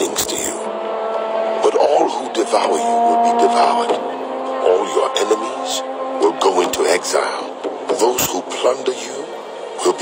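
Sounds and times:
droning tones: 0.0s - 10.0s.

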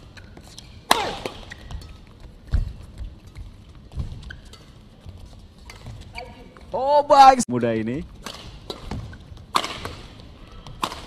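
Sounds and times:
rackets smacking shuttlecock: 0.1s - 4.8s, 8.2s - 11.0s.

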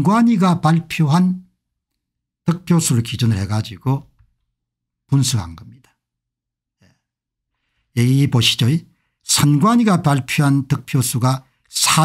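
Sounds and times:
man speaking: 0.0s - 1.5s, 2.5s - 4.1s, 5.1s - 6.0s, 8.0s - 12.0s
faint breath: 6.8s - 8.0s, 8.9s - 9.2s.

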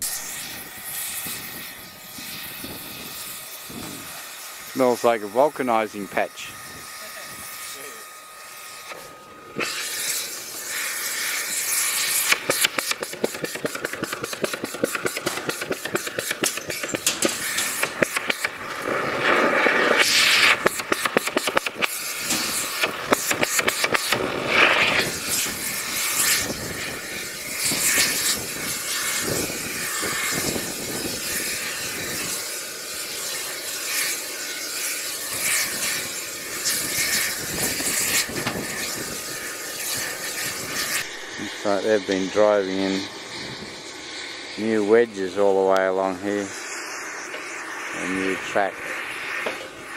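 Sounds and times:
machinery roaring hiss: 0.0s - 49.9s.

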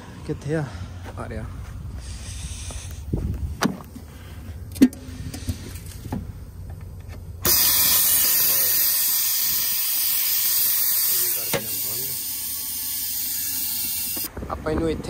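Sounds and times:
compressed air hissing: 1.9s - 3.3s, 7.4s - 14.3s.

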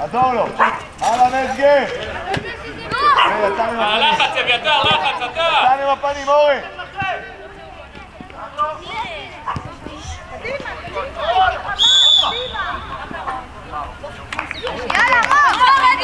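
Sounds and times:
players and coaches shouting: 2.0s - 13.1s
referee's whistle blast: 11.8s - 12.7s.

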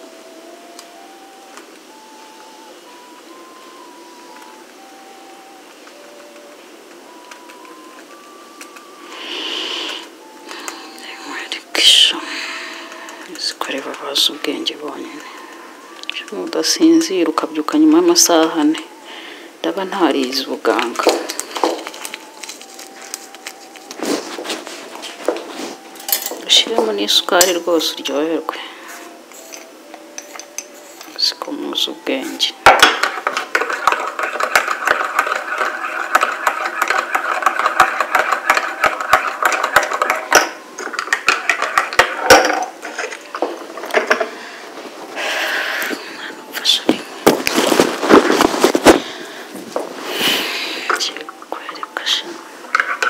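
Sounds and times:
faint melody of held notes: 0.0s - 53.0s
paper sachet rustling and tearing: 21.2s - 26.0s, 47.3s - 49.1s
teaspoon and cups clinking: 26.0s - 26.4s, 29.3s - 31.3s, 32.6s - 44.2s.

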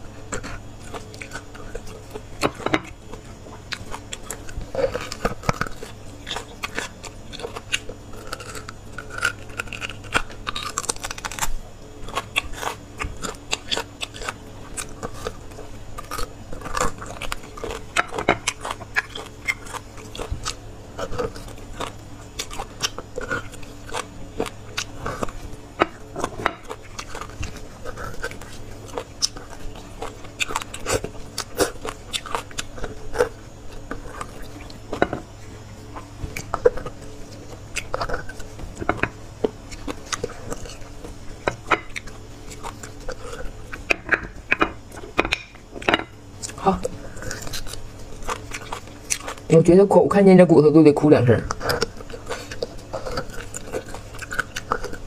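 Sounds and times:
chewing and sucking bone: 0.0s - 49.8s, 51.5s - 55.0s.

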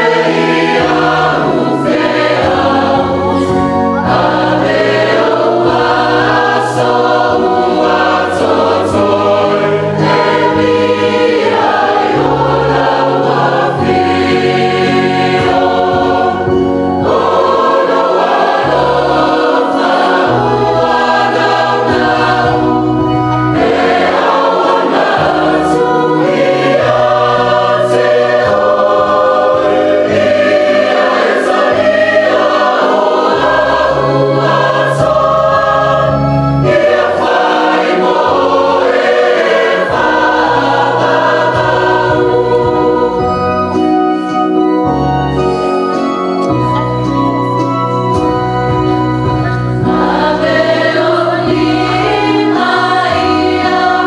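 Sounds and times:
choir singing a hymn: 0.0s - 54.0s
organ bass notes: 0.0s - 54.0s.

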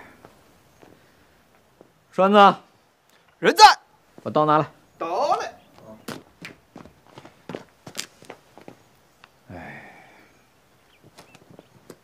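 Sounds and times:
light footsteps: 0.1s - 2.0s, 5.7s - 9.4s, 10.9s - 12.0s.

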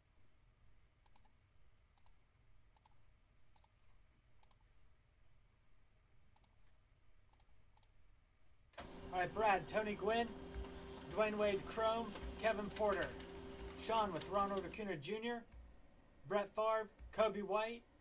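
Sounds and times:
computer mouse clicks: 1.0s - 4.7s, 6.3s - 8.0s
low steady hum: 8.8s - 18.0s.

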